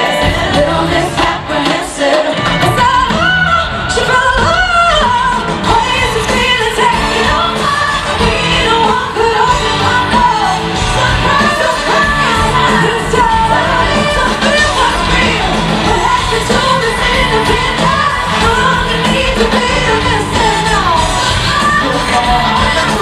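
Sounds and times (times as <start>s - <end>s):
brass section: 0.0s - 23.0s
live pop-rock band: 0.0s - 23.0s.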